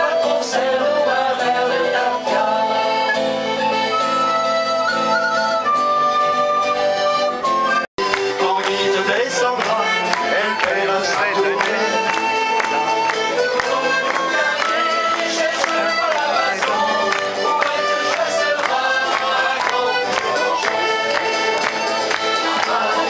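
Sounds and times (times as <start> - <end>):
accordion folk tune: 0.0 - 23.0.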